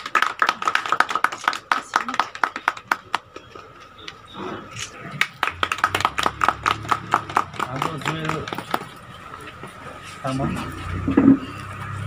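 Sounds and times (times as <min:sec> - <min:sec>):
group clapping: 0:00.0 - 0:04.2, 0:04.8 - 0:09.8.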